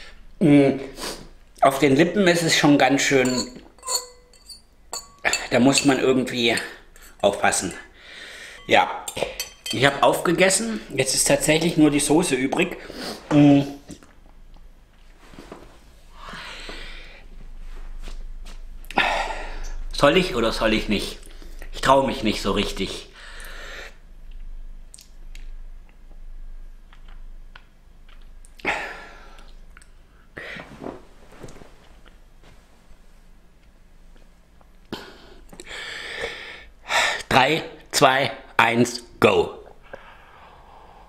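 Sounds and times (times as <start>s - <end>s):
man breathing: 7.9s - 8.7s, 16.1s - 17.3s, 34.9s - 37.3s, 39.8s - 41.0s
man moving and breathing: 30.3s - 33.2s.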